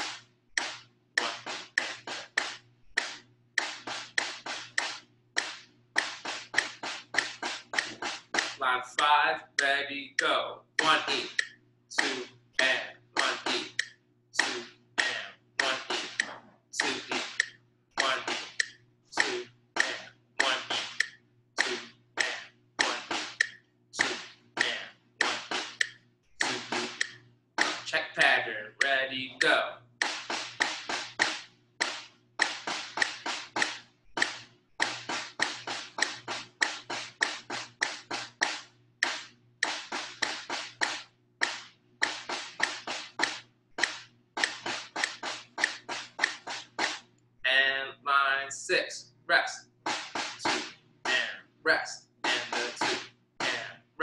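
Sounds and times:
snare drum strokes: 0:00.0 - 0:09.7, 0:10.8 - 0:47.1, 0:49.4 - 0:53.8.

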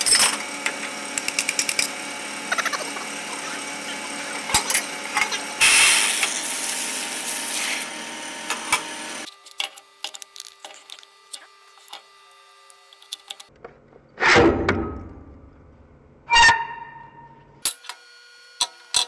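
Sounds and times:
bandsaw cutting brass: 0:00.0 - 0:09.3
bandsaw running: 0:00.0 - 0:09.4.

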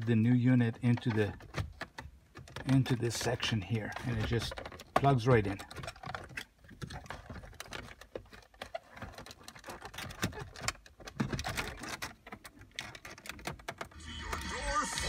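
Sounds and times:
plastic and wood clicks and knocks: 0:00.0 - 0:14.4
car stereo playing: 0:13.8 - 0:15.0.

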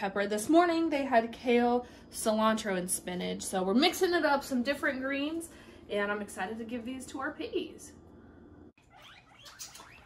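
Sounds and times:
guinea pigs wheeking: 0:08.8 - 0:10.0.

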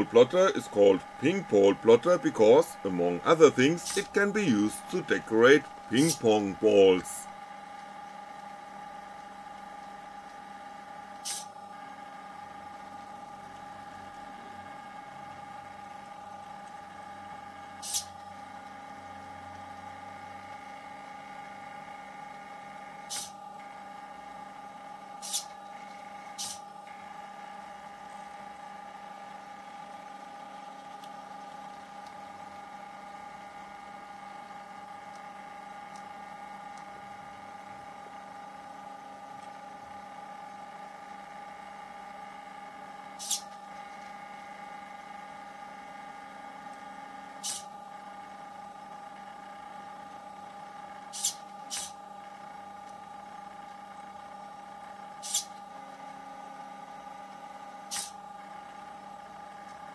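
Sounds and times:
stepper motors whining: 0:00.0 - 0:07.2.

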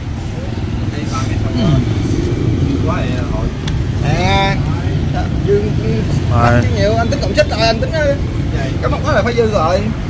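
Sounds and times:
faint voices: 0:00.0 - 0:07.2
street traffic rumble: 0:00.0 - 0:10.0.

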